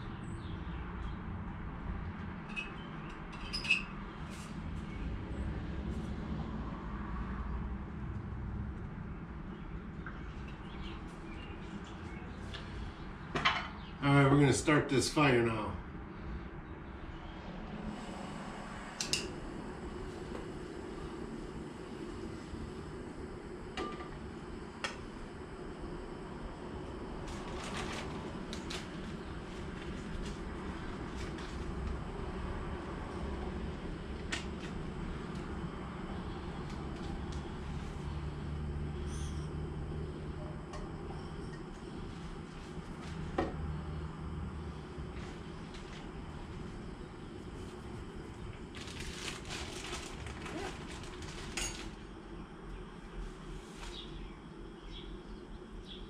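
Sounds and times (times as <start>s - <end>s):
camping stove burner hissing: 17.8s - 50.7s.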